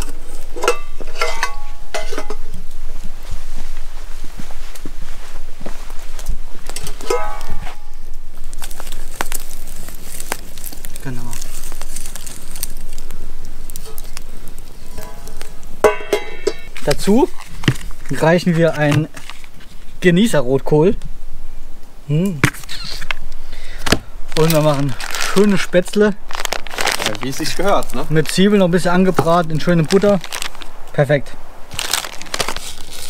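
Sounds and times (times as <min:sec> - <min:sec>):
metal pot clinking: 0:00.0 - 0:02.5, 0:07.0 - 0:07.9, 0:14.9 - 0:16.8
campfire crackling and popping: 0:00.0 - 0:05.0, 0:05.6 - 0:33.0.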